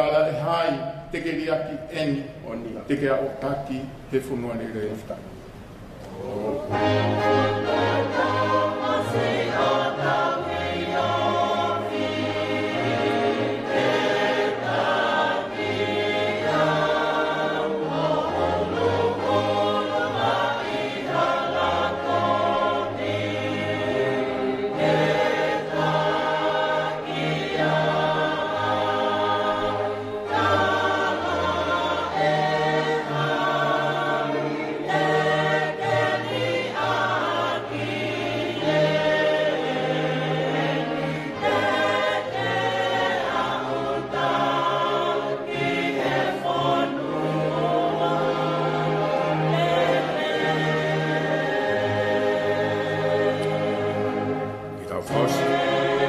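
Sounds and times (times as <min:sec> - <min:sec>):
congregation singing a hymn: 0:05.5 - 0:56.0.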